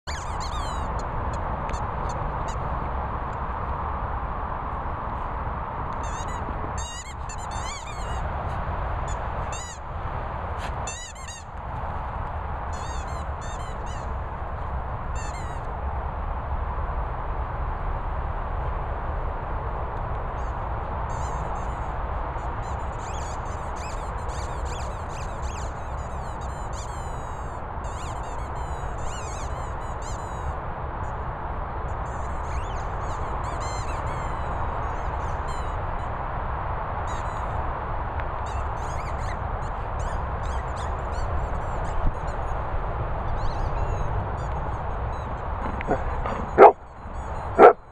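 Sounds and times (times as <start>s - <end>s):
squeaky toy squeaking: 0.1s - 1.0s, 6.0s - 8.2s, 9.5s - 9.8s, 10.8s - 11.5s, 12.7s - 14.1s, 15.2s - 15.6s, 45.1s - 47.8s.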